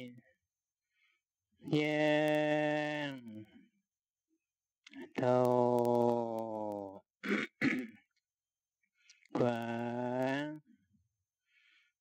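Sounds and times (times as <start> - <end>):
man clearing his throat: 7.2 - 8.0.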